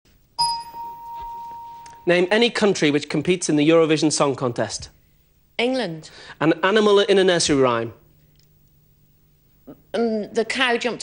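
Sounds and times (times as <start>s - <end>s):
electronic game-show chime: 0.4s - 2.3s.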